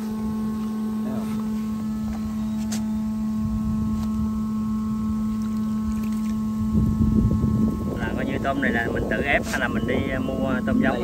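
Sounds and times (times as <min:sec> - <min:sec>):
motor humming: 0:00.0 - 0:11.0
wind rumbling on microphone: 0:03.2 - 0:11.0.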